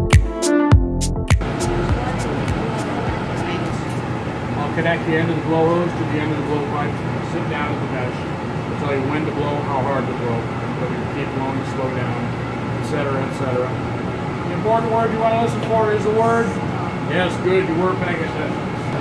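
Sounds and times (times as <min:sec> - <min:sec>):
music: 0:00.0 - 0:03.9
equipment humming: 0:01.3 - 0:19.0.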